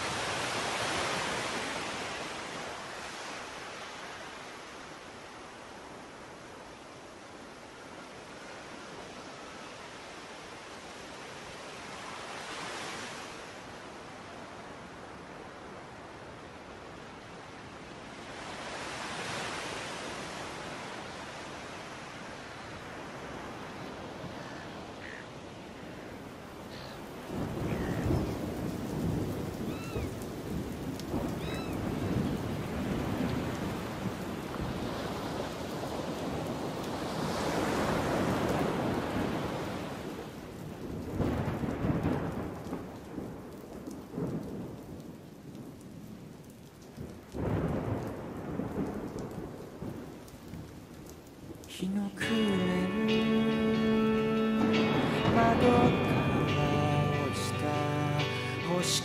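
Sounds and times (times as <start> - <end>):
ocean surf breaking: 0.0 - 42.6, 51.7 - 59.0.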